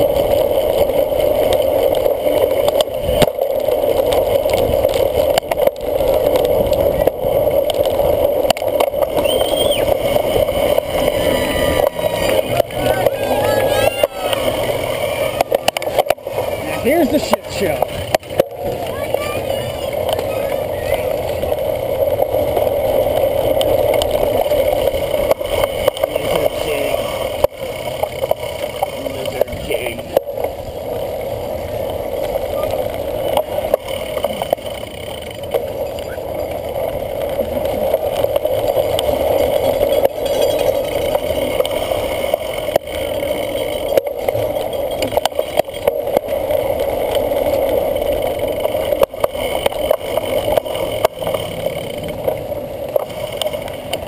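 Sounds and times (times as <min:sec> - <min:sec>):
bike rattles and clicks: 0:00.0 - 0:54.0
wind and tyres rushing: 0:00.0 - 0:54.0
voices shouting: 0:11.0 - 0:17.7, 0:18.6 - 0:21.2.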